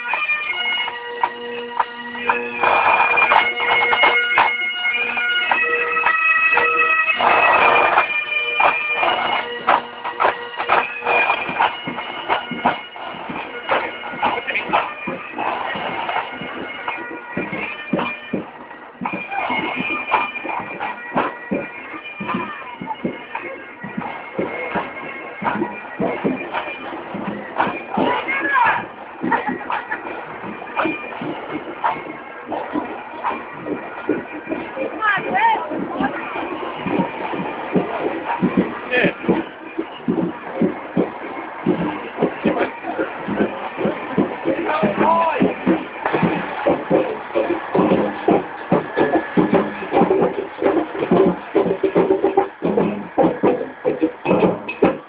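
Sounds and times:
pipe band with bagpipes and drums: 0.0 - 55.0
crowd chatter: 7.1 - 55.0.

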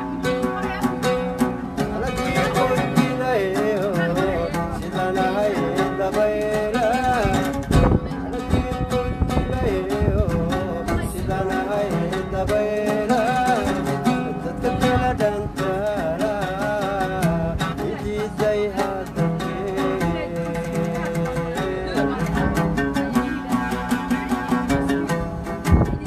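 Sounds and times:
oud plucked: 0.0 - 26.0
person singing: 8.3 - 22.2.

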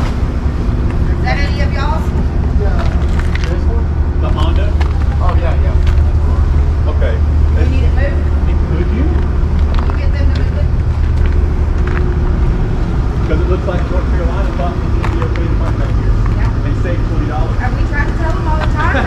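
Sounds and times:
vehicle engine idling: 0.0 - 19.0
faint voices: 1.0 - 11.1.

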